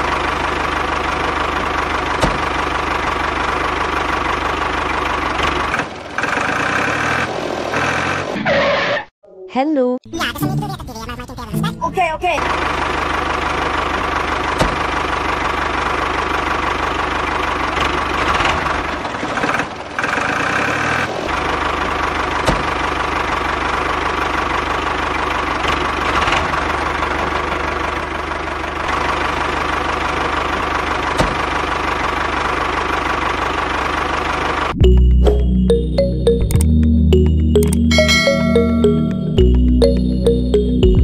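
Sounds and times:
miniature tractor engine running: 0:00.0 - 0:07.2, 0:11.9 - 0:34.7.

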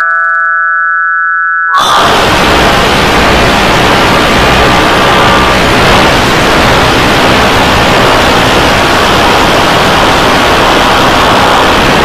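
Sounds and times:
distorted static noise: 0:01.8 - 0:12.0.

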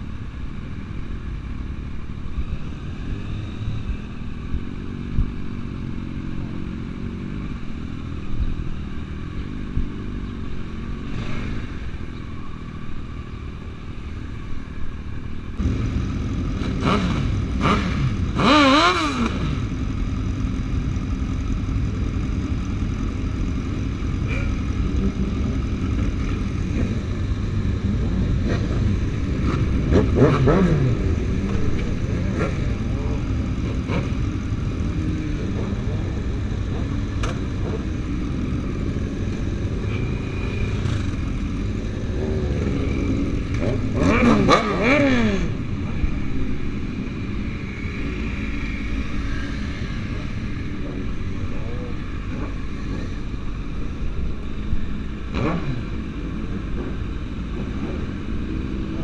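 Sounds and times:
motorcycle engines revving: 0:00.0 - 0:59.0.

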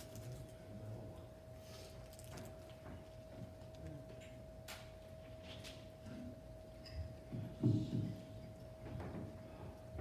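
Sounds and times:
faint steady whine: 0:00.0 - 0:10.0.

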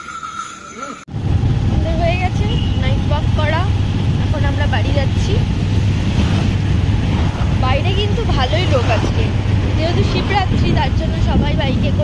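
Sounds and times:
people talking: 0:00.4 - 0:01.0, 0:01.7 - 0:05.5, 0:07.6 - 0:12.0
loud low rumble: 0:01.1 - 0:12.0.

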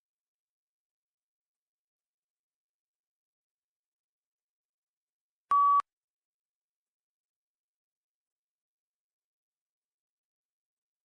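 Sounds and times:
short electronic beep: 0:05.5 - 0:05.8.

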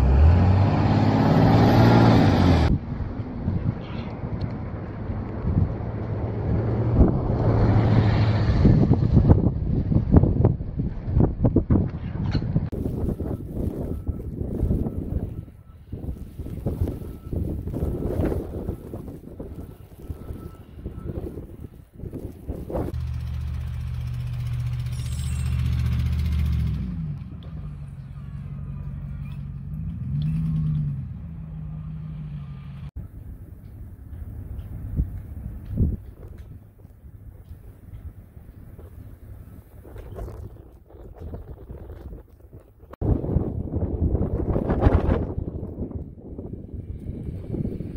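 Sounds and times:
vehicle engine humming: 0:00.0 - 0:43.0
wind buffeting microphone: 0:02.7 - 0:23.0, 0:33.0 - 0:47.9.

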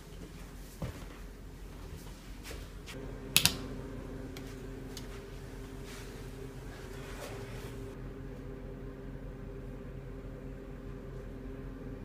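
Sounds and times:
low steady hum: 0:00.0 - 0:12.0
wall switch clicking: 0:03.3 - 0:03.7.

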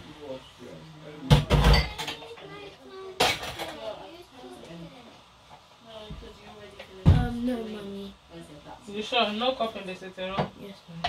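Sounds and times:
dishes clattering in a sink: 0:01.3 - 0:02.3, 0:03.2 - 0:03.9.

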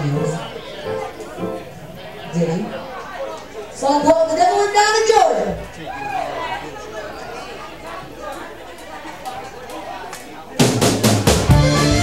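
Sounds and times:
indistinct chatter of voices: 0:00.0 - 0:12.0.

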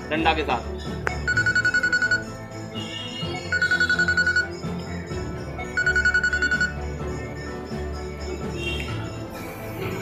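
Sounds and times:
electronic phone ringing: 0:01.0 - 0:07.9.

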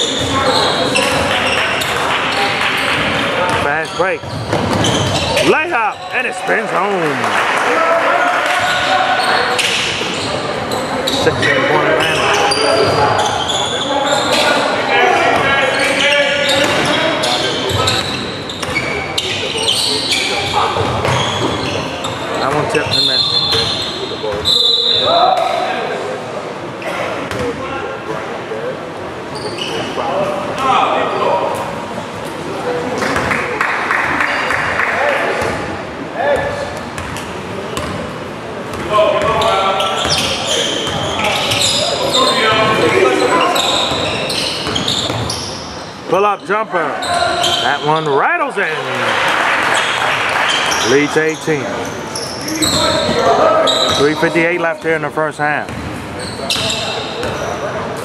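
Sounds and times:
people shouting and talking: 0:00.0 - 0:58.0.

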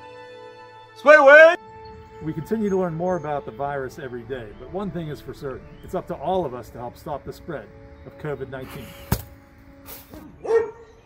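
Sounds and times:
faint background music: 0:00.8 - 0:11.0
hand smacking hanging model: 0:09.1 - 0:09.3.

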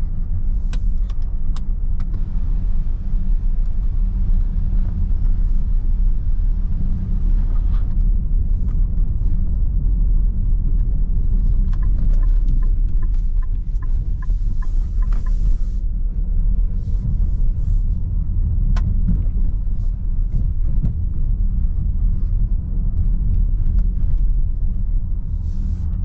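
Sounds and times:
tyres rumbling over cobblestones: 0:00.0 - 0:26.0.

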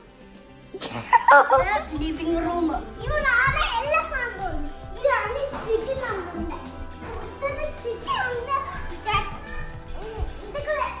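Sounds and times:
music with sustained tones: 0:00.0 - 0:11.0.

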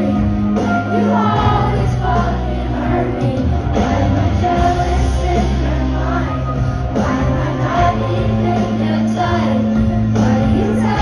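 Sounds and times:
bass: 0:00.0 - 0:11.0
drums: 0:00.0 - 0:11.0
guitar: 0:00.0 - 0:11.0
lead singer singing: 0:00.0 - 0:11.0.

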